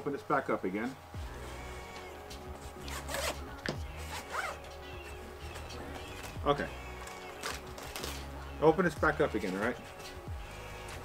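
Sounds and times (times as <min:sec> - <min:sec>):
backpack zipper pulled open: 0:02.8 - 0:03.4, 0:04.0 - 0:04.6.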